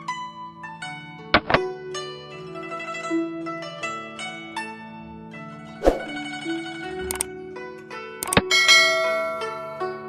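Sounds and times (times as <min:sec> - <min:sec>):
plucked zither music: 0:00.0 - 0:10.0
mouse clicks: 0:08.2 - 0:08.4.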